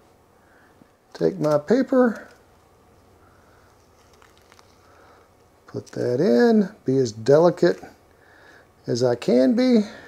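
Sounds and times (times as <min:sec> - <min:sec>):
thin paper being folded: 0:03.6 - 0:06.0.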